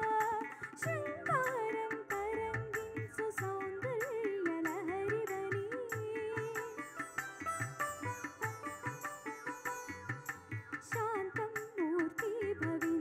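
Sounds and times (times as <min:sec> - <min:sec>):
woman singing into a microphone: 0:00.0 - 0:07.0, 0:10.8 - 0:13.0
instrumental accompaniment: 0:00.0 - 0:13.0.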